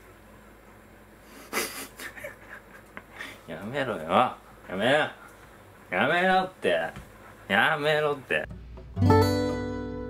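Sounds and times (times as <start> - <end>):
man's stifled breathy laughter: 1.3 - 3.5.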